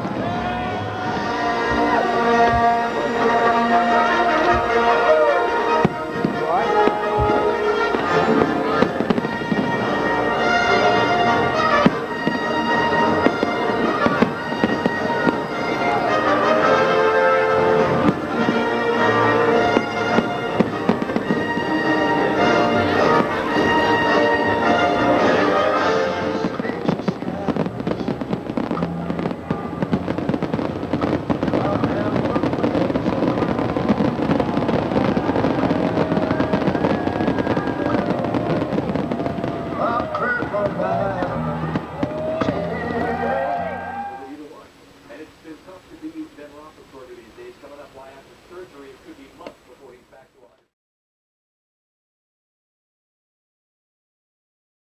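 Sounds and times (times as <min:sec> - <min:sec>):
music playing: 0:00.0 - 0:44.4
fireworks crackling and banging: 0:00.0 - 0:50.7.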